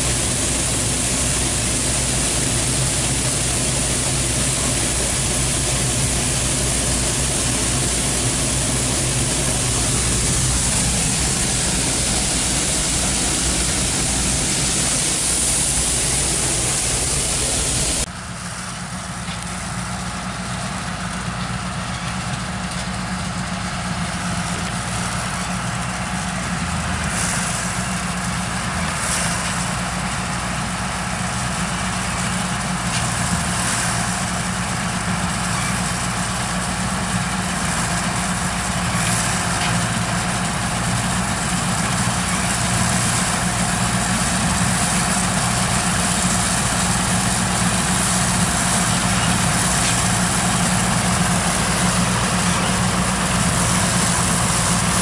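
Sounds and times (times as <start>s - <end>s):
combine harvester machinery noise: 0.0s - 55.0s
engine hum: 0.0s - 55.0s.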